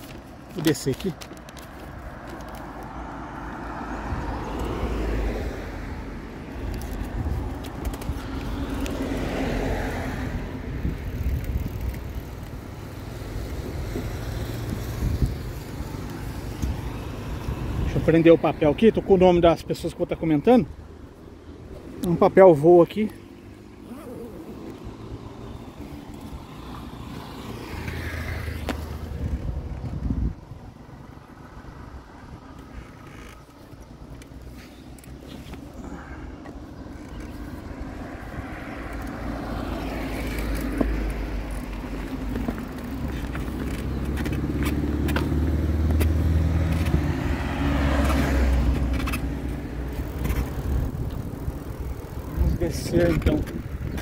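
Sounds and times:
vehicles passing: 0.0s - 54.0s
wind rumble on microphone: 6.0s - 12.8s, 13.4s - 18.2s, 27.5s - 33.0s, 37.1s - 54.0s.

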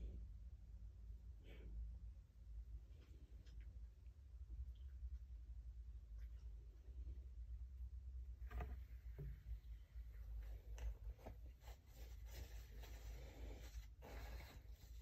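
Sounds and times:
low steady hum: 0.0s - 15.0s
light scratching and rustling: 8.4s - 15.0s.

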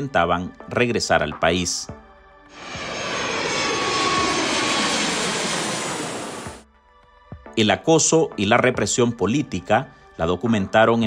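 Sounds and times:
jet airplane passing overhead: 2.5s - 6.6s.

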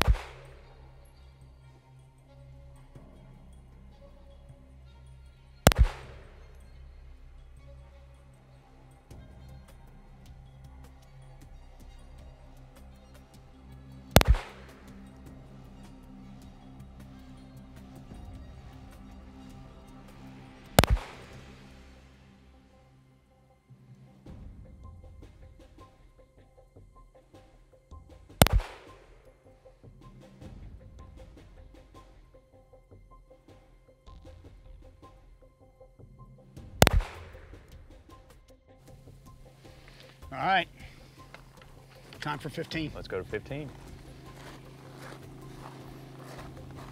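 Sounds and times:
pistol shots: 0.0s - 0.6s, 5.7s - 6.3s, 14.2s - 14.9s, 20.8s - 21.4s, 28.4s - 29.1s, 36.8s - 37.6s
background music with ticking beat: 0.0s - 46.9s.

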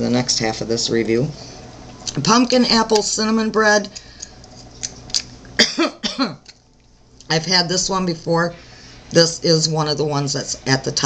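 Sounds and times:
woman coughing: 5.6s - 6.5s.

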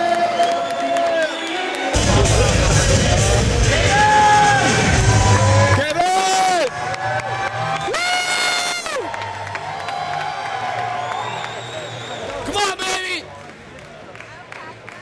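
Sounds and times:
crowd cheering: 0.0s - 15.0s
loud music with heavy bass beat: 2.0s - 5.8s.

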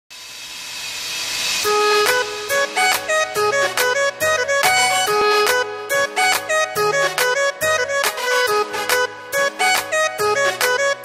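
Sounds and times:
sustained melodic notes: 1.6s - 11.0s.

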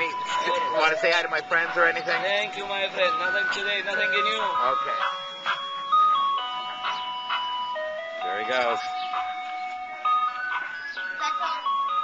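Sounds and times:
ice cream truck jingle: 0.0s - 12.0s.

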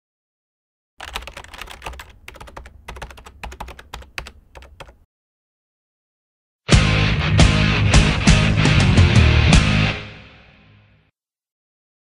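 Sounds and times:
fast typing on keyboard: 1.0s - 5.0s.

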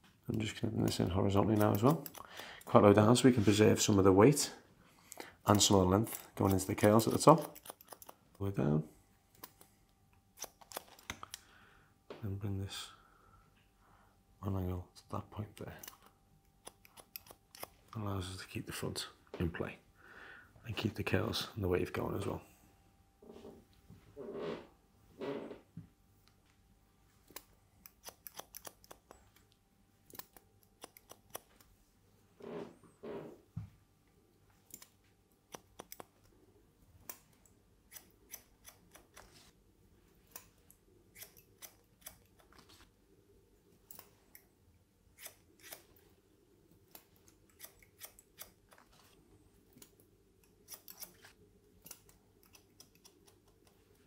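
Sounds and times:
scissors snipping hair: 0.3s - 2.7s, 5.5s - 8.4s, 9.3s - 11.4s, 15.6s - 17.9s, 27.3s - 31.7s, 34.6s - 36.3s, 37.9s - 39.4s, 40.2s - 42.7s, 45.1s - 46.0s, 46.8s - 48.9s, 49.7s - 53.9s.

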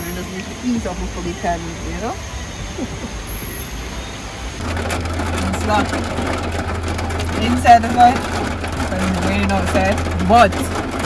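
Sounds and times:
car engine idling: 0.0s - 11.0s
voices: 0.0s - 11.0s.

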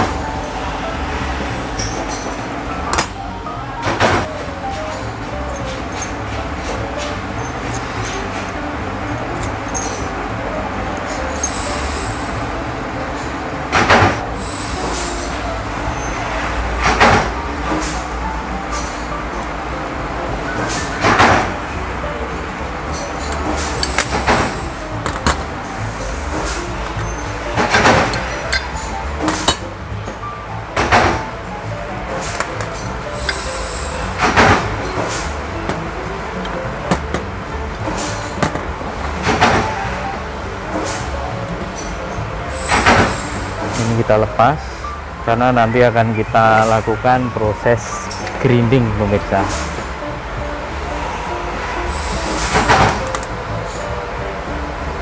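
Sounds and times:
continuous low hum: 0.0s - 55.0s.

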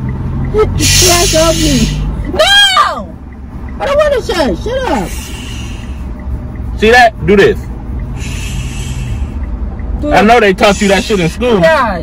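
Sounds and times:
car cabin rumble: 0.0s - 12.0s.

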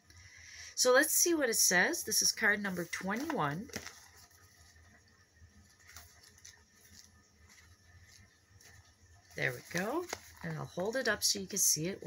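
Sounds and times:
paper rustling: 2.4s - 11.4s.

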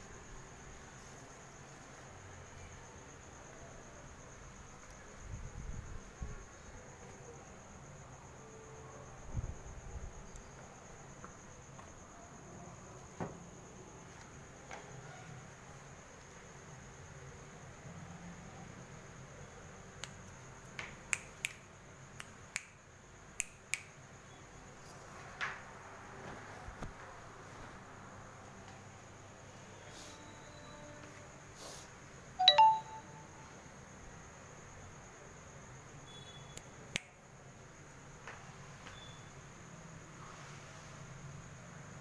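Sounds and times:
faint high-pitched tone: 32.4s - 33.6s.

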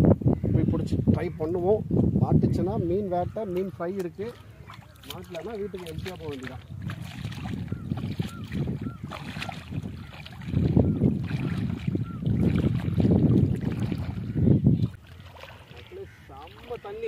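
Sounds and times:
wind rumbling on microphone: 0.0s - 17.0s
legs wading through shallow water: 3.2s - 17.0s.

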